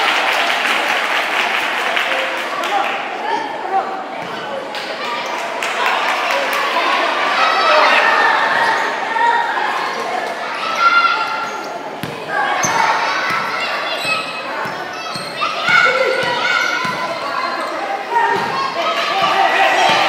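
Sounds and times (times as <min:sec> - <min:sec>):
voices in a hall: 0:00.0 - 0:20.0
basketball bouncing on court: 0:12.0 - 0:17.7, 0:18.3 - 0:20.0.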